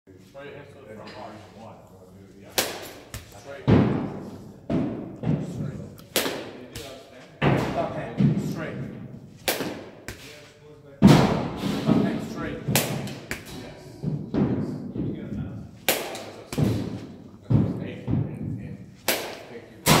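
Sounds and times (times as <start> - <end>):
wooden bat hitting balls: 2.5 - 8.6, 9.4 - 10.3, 11.0 - 15.1, 15.7 - 20.0.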